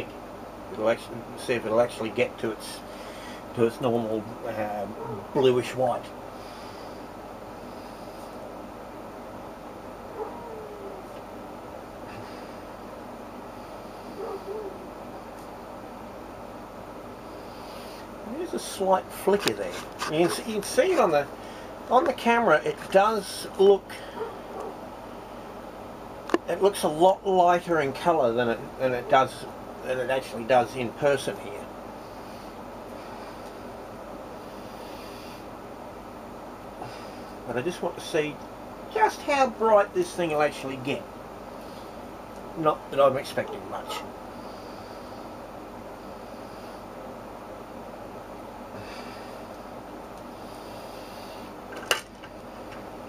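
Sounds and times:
low background hum and hiss: 0.0 - 53.0.

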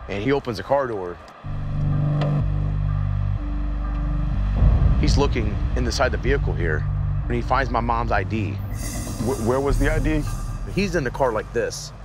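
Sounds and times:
low sustained music score: 1.4 - 12.0.

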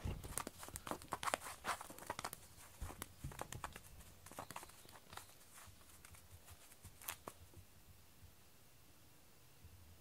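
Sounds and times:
light taps on foam mat: 0.0 - 7.6.

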